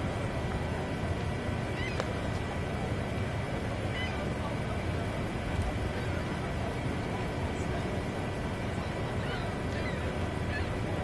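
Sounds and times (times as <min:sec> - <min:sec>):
waterfall roaring: 0:00.0 - 0:11.0.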